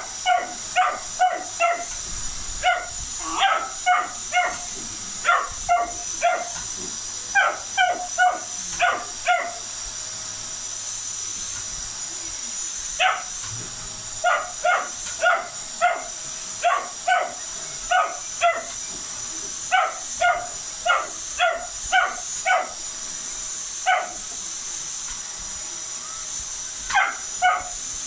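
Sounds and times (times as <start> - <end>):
vacuum cleaner motor whining: 0.0 - 28.0
puppy yapping: 0.2 - 1.9, 2.6 - 6.6, 7.4 - 9.6, 13.0 - 13.3, 14.2 - 18.8, 19.7 - 22.8, 23.9 - 24.2, 26.9 - 27.8.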